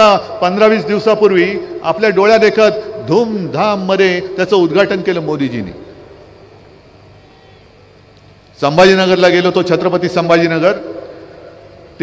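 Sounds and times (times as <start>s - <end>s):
low background noise: 0.0s - 12.0s.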